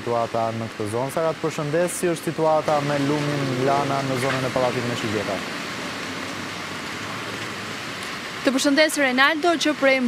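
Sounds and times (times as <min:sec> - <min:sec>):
rain hiss: 0:00.0 - 0:10.0
traffic on wet street: 0:00.0 - 0:10.0.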